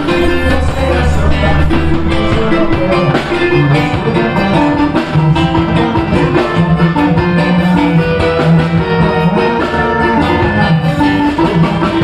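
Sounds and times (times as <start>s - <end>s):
drums beating: 0.0s - 12.0s
guitar: 0.0s - 12.0s
live band playing dance music: 0.0s - 12.0s.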